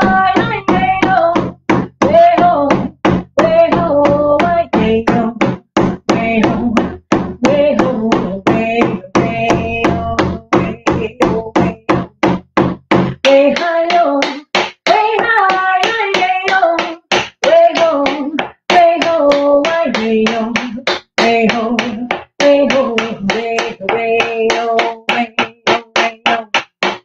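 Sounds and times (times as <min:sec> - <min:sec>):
woman singing: 0:00.0 - 0:12.3, 0:12.9 - 0:26.6
hand drum beat: 0:00.0 - 0:27.0.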